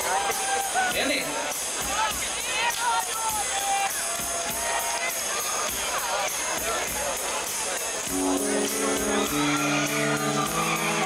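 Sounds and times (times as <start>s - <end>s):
crowd and stage noise: 0.0s - 11.0s.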